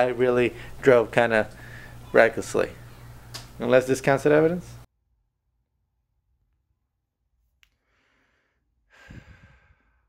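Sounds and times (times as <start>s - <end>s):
faint airy breath: 0.5s - 0.8s, 1.5s - 2.1s, 7.8s - 10.0s
person sighing: 8.9s - 9.9s.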